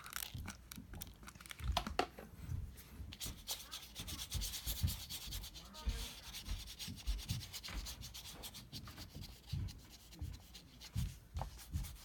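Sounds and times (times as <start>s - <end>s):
paintbrush scratching on paper: 3.1s - 12.0s
soft low thumps: 9.1s - 12.0s.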